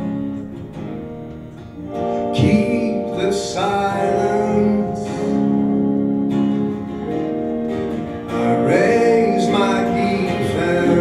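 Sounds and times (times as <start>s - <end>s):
acoustic guitar strumming chords: 0.0s - 11.0s
electric guitar: 0.0s - 11.0s.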